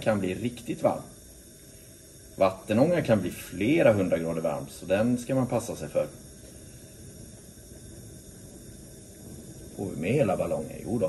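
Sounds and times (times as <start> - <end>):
gas burner flame hissing: 0.0 - 11.0.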